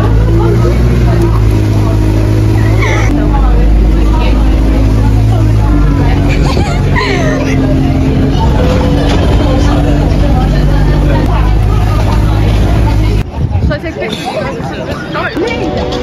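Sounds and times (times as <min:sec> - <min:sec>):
bus engine humming: 0:00.0 - 0:16.0
passengers' voices: 0:00.0 - 0:16.0.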